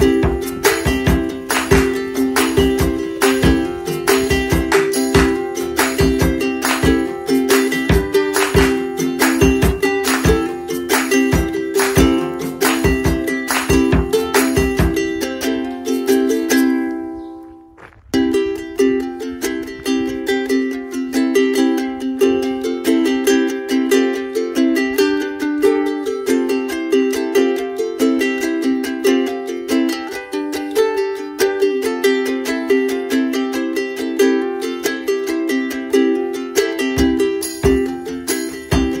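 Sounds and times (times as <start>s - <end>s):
strummed string instrument: 0.0s - 39.0s.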